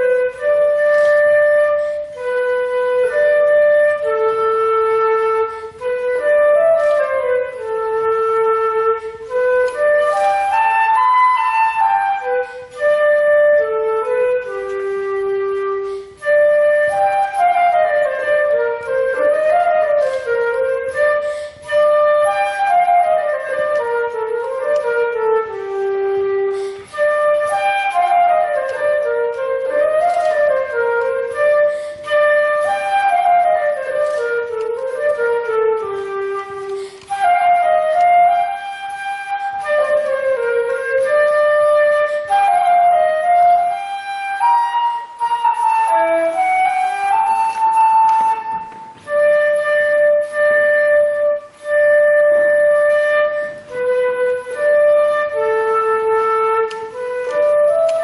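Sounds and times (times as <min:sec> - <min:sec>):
solo flute melody: 0:00.0 - 0:58.0.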